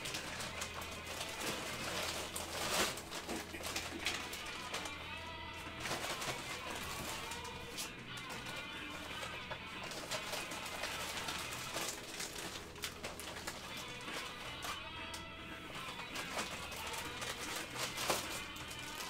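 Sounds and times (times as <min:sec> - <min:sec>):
faint background music: 0:00.0 - 0:19.0
packaging rustling and clicking: 0:00.0 - 0:19.0.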